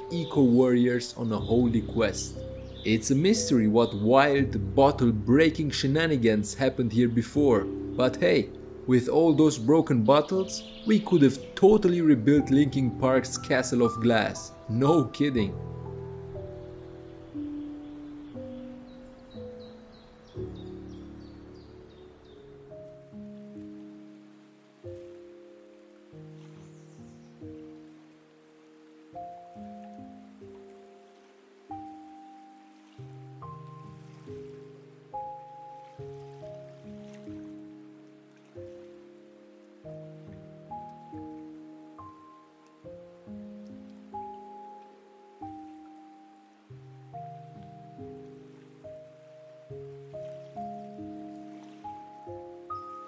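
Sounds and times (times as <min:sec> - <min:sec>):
gentle background music: 0:00.0 - 0:53.0.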